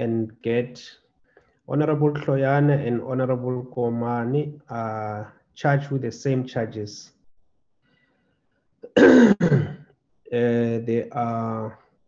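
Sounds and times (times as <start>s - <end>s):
person clearing throat: 8.8s - 9.9s.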